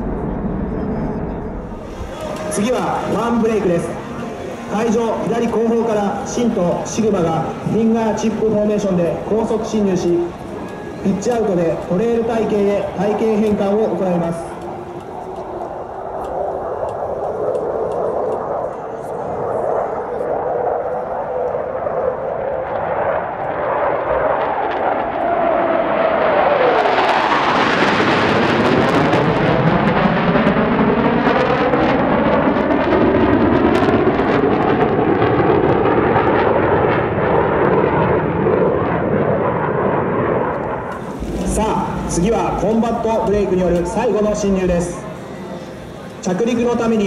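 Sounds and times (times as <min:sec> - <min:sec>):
fighter jets passing: 0:00.0 - 0:47.0.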